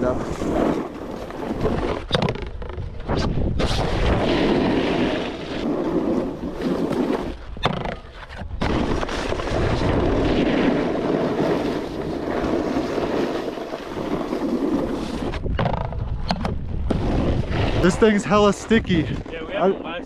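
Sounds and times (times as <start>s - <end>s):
snowboard scraping snow: 0.0s - 2.1s, 3.0s - 16.2s, 16.9s - 20.0s
snowboard sliding on rail: 0.0s - 2.1s, 3.0s - 7.6s, 8.2s - 16.2s
wind buffeting microphone: 0.0s - 20.0s
person talking: 17.8s - 20.0s.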